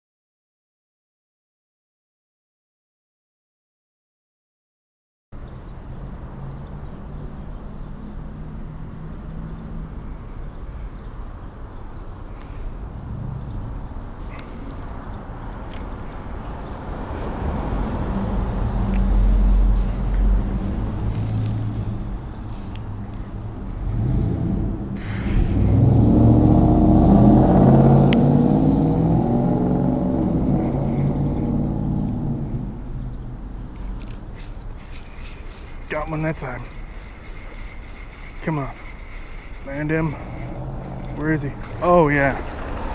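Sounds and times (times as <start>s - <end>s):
low engine hum: 5.4s - 42.9s
traffic rumbling over bridge: 5.4s - 42.9s.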